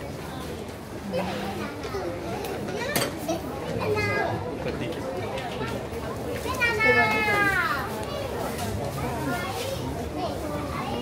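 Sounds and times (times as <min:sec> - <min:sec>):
chatter of shopping crowd: 0:00.0 - 0:11.0.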